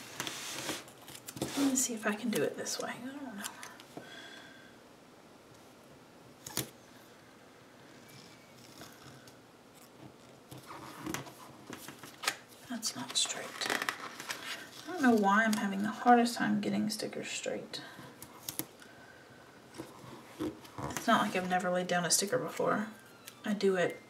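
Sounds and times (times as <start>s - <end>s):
paper rustling and rubbing: 0.0s - 1.9s.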